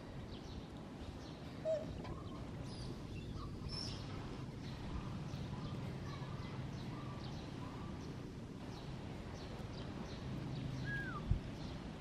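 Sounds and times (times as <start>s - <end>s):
faint bird chirps: 0.2s - 11.8s.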